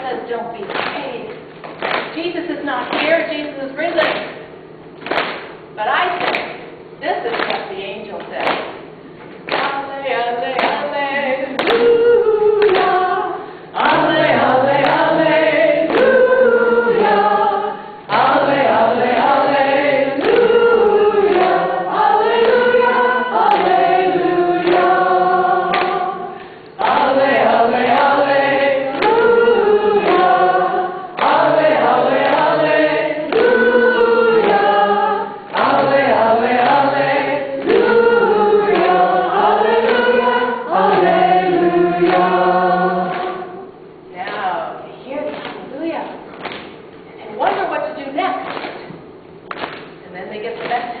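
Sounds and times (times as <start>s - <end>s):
group singing a hymn unaccompanied: 9.5s - 43.9s.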